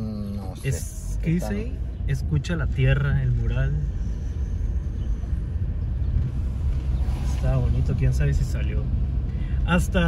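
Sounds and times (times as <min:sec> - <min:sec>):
car engine rumble: 0:00.0 - 0:10.0
road noise: 0:00.0 - 0:10.0.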